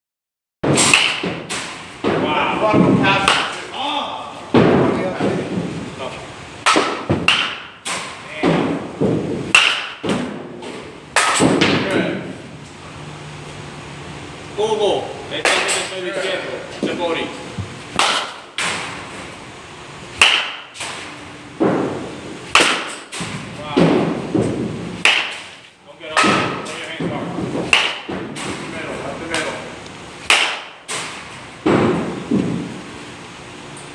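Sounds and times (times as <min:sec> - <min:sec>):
baseball bat striking balls: 0:00.6 - 0:03.8, 0:06.6 - 0:12.1, 0:15.4 - 0:16.0, 0:17.9 - 0:19.3, 0:20.1 - 0:32.8.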